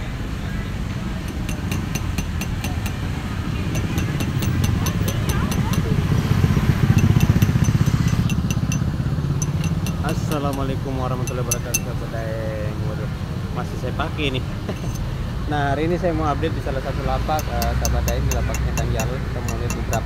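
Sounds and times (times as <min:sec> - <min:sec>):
motorcycle engine rumble: 0:00.0 - 0:12.0
person speaking: 0:09.6 - 0:12.1, 0:17.3 - 0:20.0.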